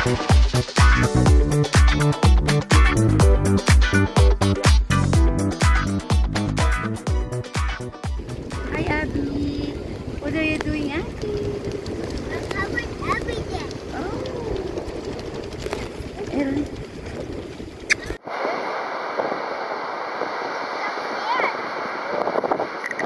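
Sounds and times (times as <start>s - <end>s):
surf: 0.0s - 23.0s
wind buffeting microphone: 8.1s - 23.0s
woman talking: 8.6s - 11.7s, 16.2s - 16.7s
small children talking: 10.7s - 14.8s, 20.8s - 21.6s.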